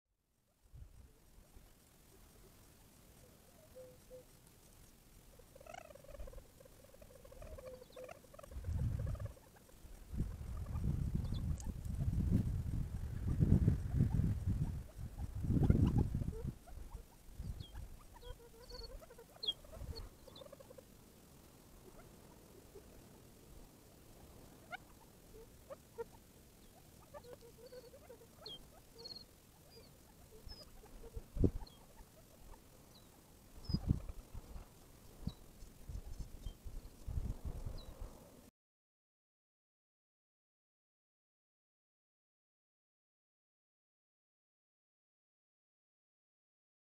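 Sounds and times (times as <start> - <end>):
quail contact calls: 0.9 - 38.4.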